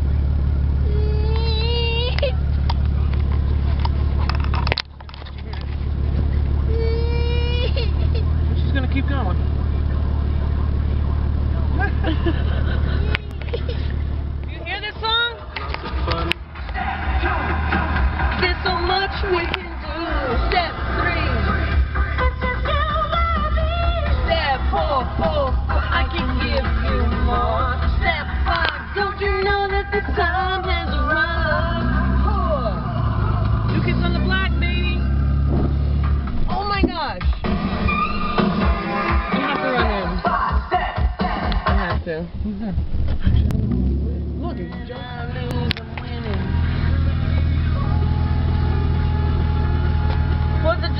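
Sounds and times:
car engine rumble inside cabin: 0.0s - 38.7s, 39.4s - 50.9s
high-pitched voices and laughter: 6.7s - 8.5s
women singing along: 17.2s - 34.4s, 39.7s - 41.8s.

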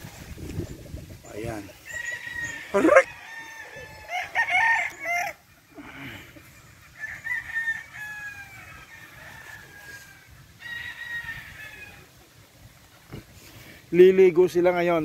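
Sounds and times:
roosters crowing: 0.0s - 12.4s.

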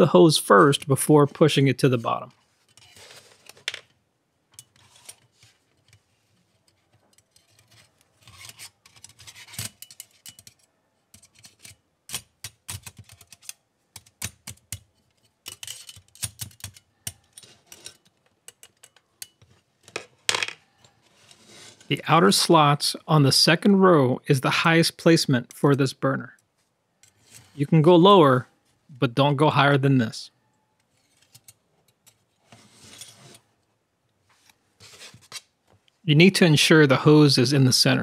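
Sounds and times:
metal stove parts clicking: 6.6s - 19.6s.

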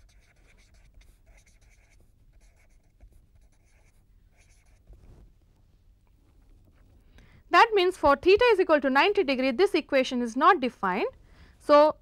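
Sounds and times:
marker writing on paper: 0.0s - 4.9s.

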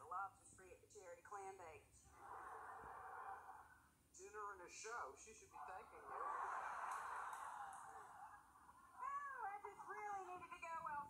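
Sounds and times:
studio audience laughter: 2.2s - 3.8s, 6.0s - 8.9s.

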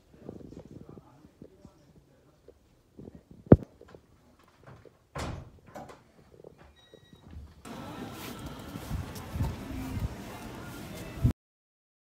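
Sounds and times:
street noise: 7.6s - 11.3s
distant voices: 7.7s - 11.3s.

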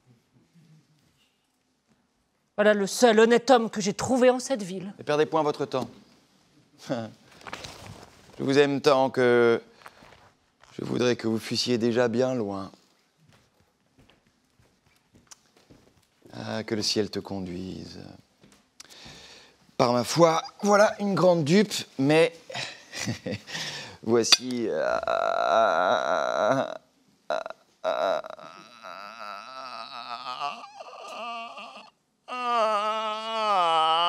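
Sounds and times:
man laughing: 22.5s - 23.6s.

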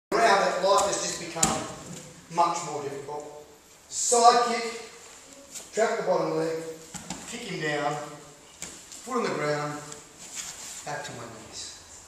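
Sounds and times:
person speaking: 0.1s - 10.1s
bodies thumping on training mat: 0.7s - 2.1s, 6.9s - 7.3s.

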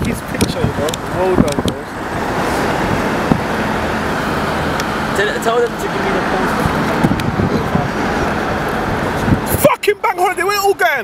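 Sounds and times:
motorway traffic rushing: 0.0s - 11.0s.

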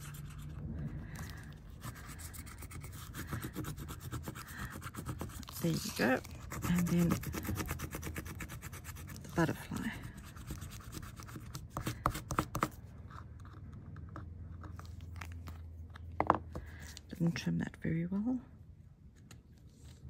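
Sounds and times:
paper stump rubbing on foil tape: 1.7s - 12.0s.

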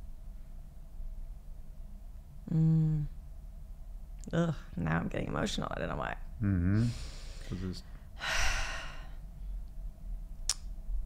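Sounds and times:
woman sighing: 2.5s - 3.1s, 8.2s - 9.2s.

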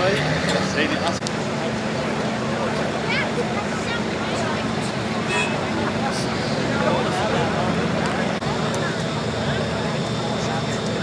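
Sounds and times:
off-road engines running: 0.0s - 11.0s
people talking: 0.0s - 11.0s.

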